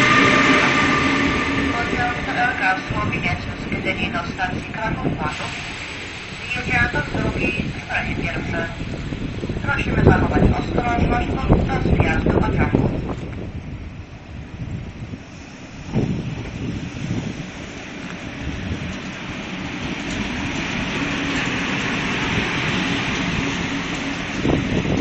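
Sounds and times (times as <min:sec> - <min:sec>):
electric locomotive running slowly: 0:00.0 - 0:25.0.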